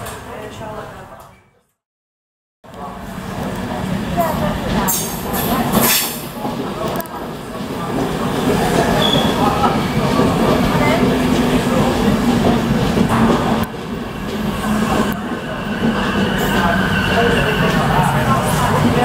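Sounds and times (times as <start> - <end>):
train wheels rumbling on rails: 2.7 - 19.0.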